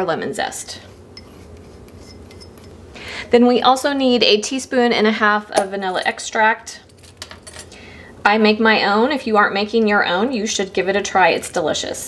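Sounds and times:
low room hum: 0:00.0 - 0:12.0
dishes clinking: 0:01.2 - 0:02.8.

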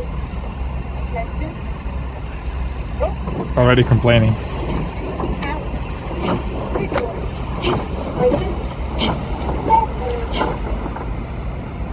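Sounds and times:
motor launch engine rumble: 0:00.0 - 0:11.9
oar blades splashing water: 0:03.2 - 0:11.3.

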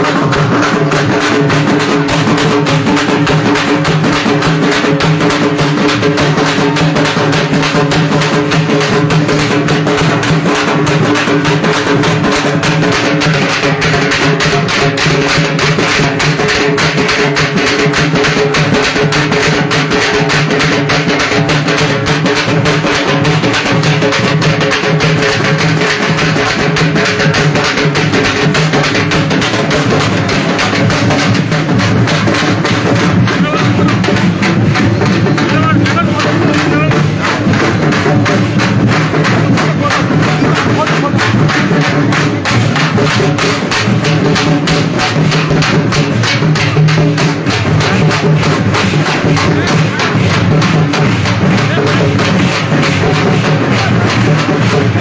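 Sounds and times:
fast drumming: 0:00.0 - 0:55.0.

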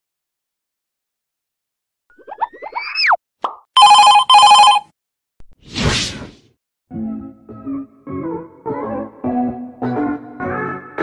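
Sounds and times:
telephone ringing: 0:03.8 - 0:04.9
whoosh: 0:05.6 - 0:06.4.

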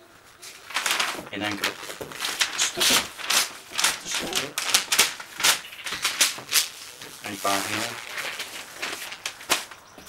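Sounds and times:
newspaper rustling and crackling: 0:00.0 - 0:10.0.

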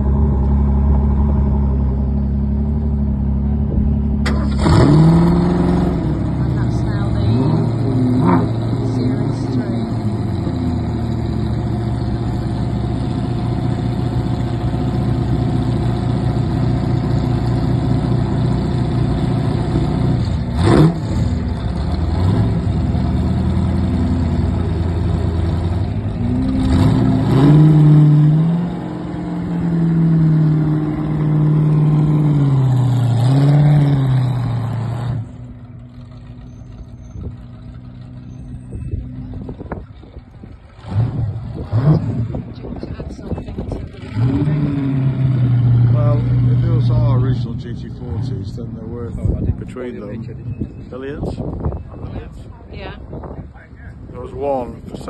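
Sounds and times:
car engines idling and revving: 0:00.0 - 0:55.0.

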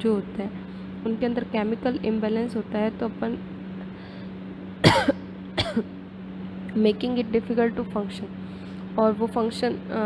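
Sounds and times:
steady low hum: 0:00.0 - 0:10.0
woman coughing: 0:04.8 - 0:05.9.

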